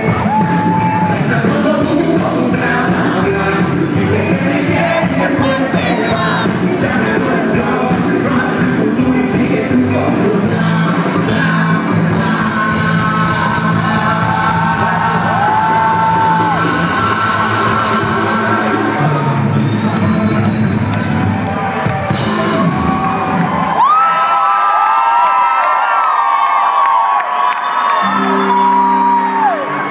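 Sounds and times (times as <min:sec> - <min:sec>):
crowd whooping and yelling: 0:00.0 - 0:07.7, 0:10.8 - 0:29.9
live band and singers: 0:00.0 - 0:24.3.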